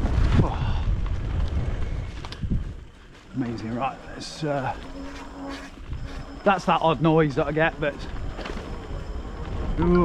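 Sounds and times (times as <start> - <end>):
wind buffeting microphone: 0.0 - 3.7
bike tyres rolling on dirt: 0.0 - 10.0.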